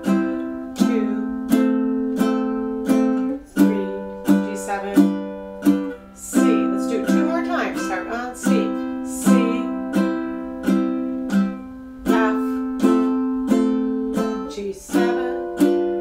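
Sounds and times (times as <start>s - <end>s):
ukulele strummed slowly: 0.0s - 16.0s.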